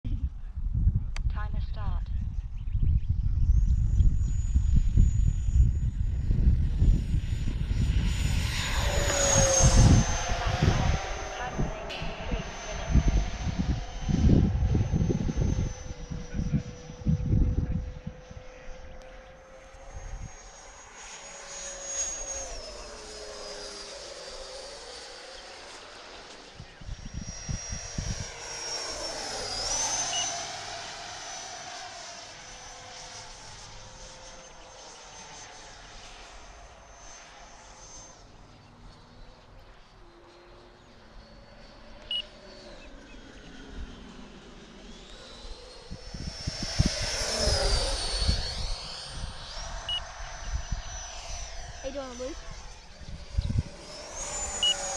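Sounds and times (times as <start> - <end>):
model jet fan whine: 0.1 - 54.9.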